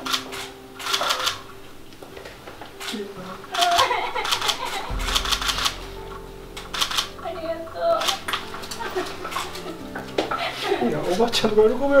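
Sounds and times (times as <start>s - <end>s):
camera shutters clicking: 0.0s - 1.4s, 3.6s - 5.8s, 6.7s - 7.1s, 8.0s - 8.3s
low steady tones: 3.1s - 10.5s.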